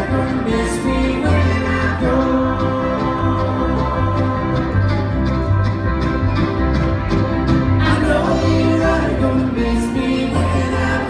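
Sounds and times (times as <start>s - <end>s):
string band playing: 0.0s - 11.0s
upright bass: 0.0s - 11.0s.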